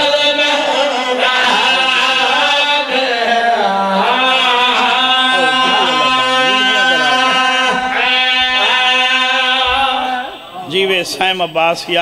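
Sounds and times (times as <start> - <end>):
man chanting through loudspeaker: 0.0 - 10.8
steady held drone: 4.1 - 8.7.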